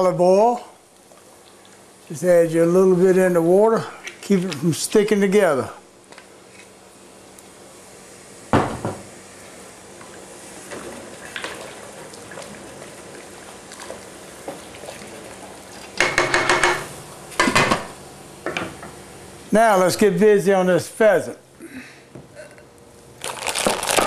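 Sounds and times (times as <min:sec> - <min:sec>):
wooden spoon tapping pot: 0:16.0 - 0:16.8.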